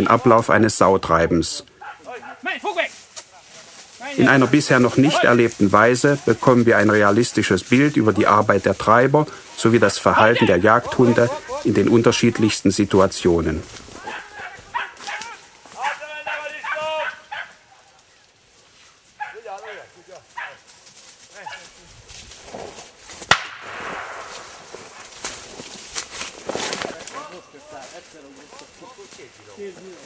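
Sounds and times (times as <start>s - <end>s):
leaves and twigs rustling: 0.0s - 30.0s
dogs barking: 1.8s - 2.5s, 14.0s - 17.9s, 19.2s - 20.7s
people calling out: 4.0s - 6.5s, 9.3s - 11.9s, 13.9s - 18.0s
sharp crack: 22.5s - 27.0s.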